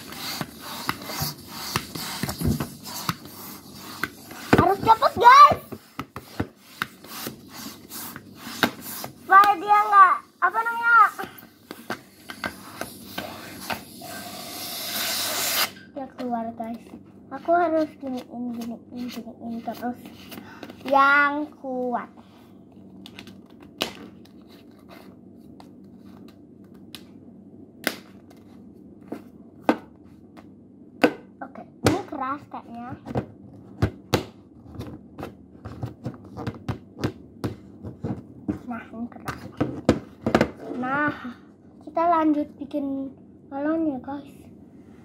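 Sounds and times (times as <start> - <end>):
rubber balloon rustling and rubbing: 0.0 - 15.6
hand pump strokes hissing: 12.1 - 15.7.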